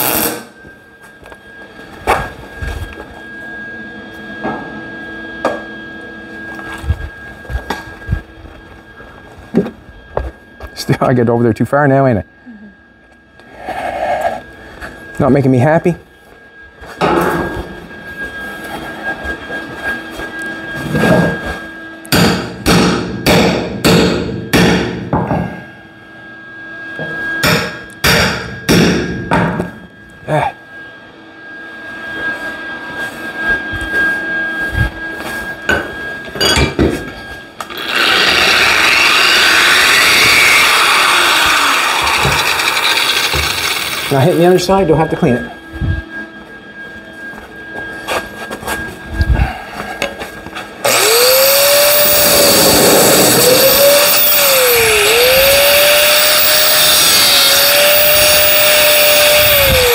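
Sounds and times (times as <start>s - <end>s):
angle grinder on metal: 0.0s - 0.5s, 37.6s - 44.6s, 50.8s - 59.9s.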